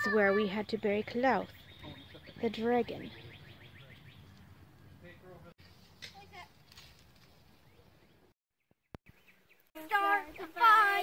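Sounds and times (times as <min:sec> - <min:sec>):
faint bird chirps: 0:01.1 - 0:04.4.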